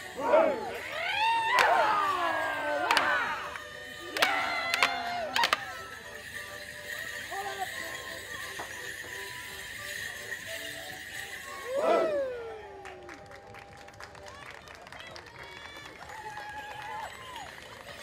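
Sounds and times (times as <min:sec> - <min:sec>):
wooden sticks clashing: 0:01.3 - 0:05.8.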